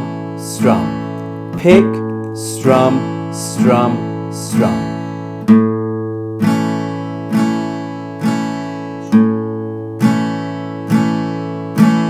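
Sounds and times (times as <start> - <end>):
acoustic guitar strumming: 0.0 - 12.0
guitar string picked: 0.5 - 6.8.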